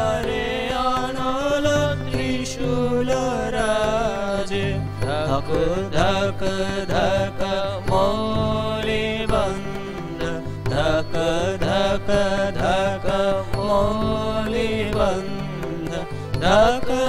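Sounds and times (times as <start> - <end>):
harmonium drone: 0.0 - 17.0
light percussion strikes: 0.0 - 17.0
men singing devotional song: 0.0 - 17.0.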